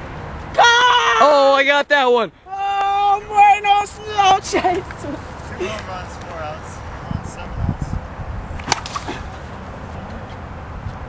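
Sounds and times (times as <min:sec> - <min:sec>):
plastic bat striking ball: 0:08.6 - 0:09.3.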